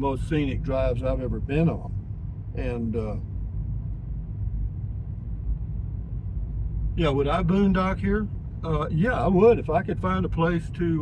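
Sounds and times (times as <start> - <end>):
vehicle road rumble in cabin: 0.0 - 11.0.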